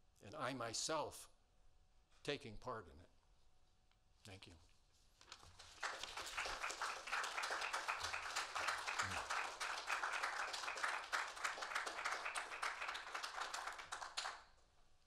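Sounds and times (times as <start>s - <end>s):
audience applauding: 5.6s - 14.5s.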